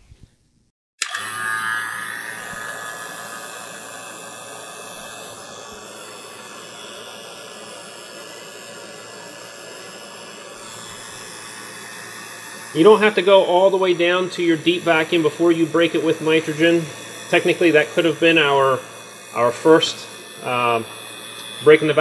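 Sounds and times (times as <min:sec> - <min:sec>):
vacuum pump running: 0:01.0 - 0:22.0.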